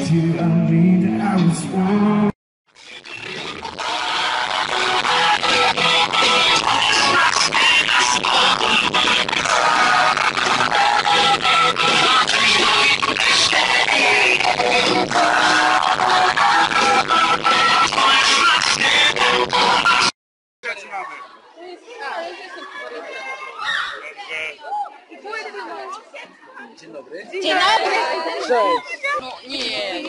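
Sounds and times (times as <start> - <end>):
live pop concert music: 0.0 - 20.1
person singing: 3.8 - 20.1.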